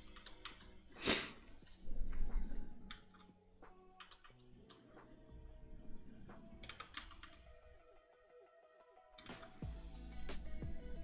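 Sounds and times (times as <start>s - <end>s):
quiet background music: 0.0s - 11.0s
computer keyboard clicks: 6.6s - 7.4s.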